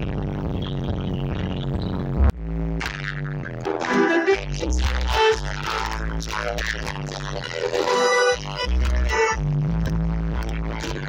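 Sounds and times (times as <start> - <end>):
dub music over sound system: 0.0 - 11.0.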